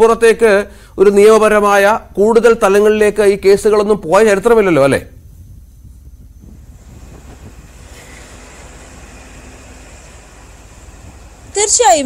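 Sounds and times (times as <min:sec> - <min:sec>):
low rumble: 0:05.1 - 0:11.6
hiss: 0:05.3 - 0:11.7.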